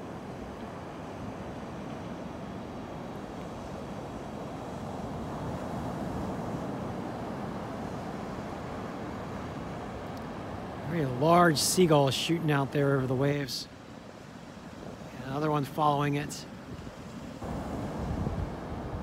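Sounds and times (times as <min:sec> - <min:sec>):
small waves washing up beach: 0:00.0 - 0:19.0.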